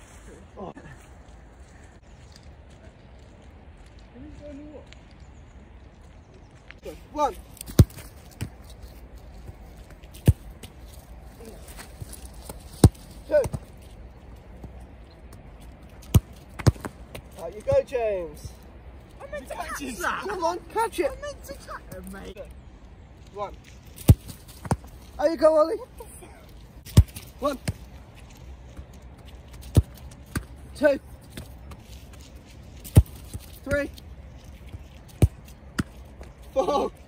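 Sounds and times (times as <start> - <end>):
ball hitting goalkeeper gloves: 7.6 - 8.6, 11.8 - 13.7, 16.0 - 17.9, 24.0 - 24.9, 26.8 - 27.9, 29.6 - 30.5, 32.8 - 33.8
football being struck thuds: 7.6 - 8.6, 16.0 - 17.2, 24.0 - 24.9, 26.8 - 27.8, 32.8 - 33.8
football kicked: 7.6 - 8.6, 10.2 - 10.8, 11.8 - 13.7, 16.0 - 17.9, 24.0 - 24.9, 26.8 - 27.9, 29.6 - 30.5, 32.8 - 33.8, 35.1 - 36.0.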